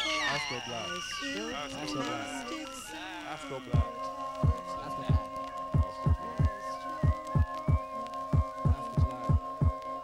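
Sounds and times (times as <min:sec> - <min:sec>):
held synth tone: 0:00.0 - 0:09.8.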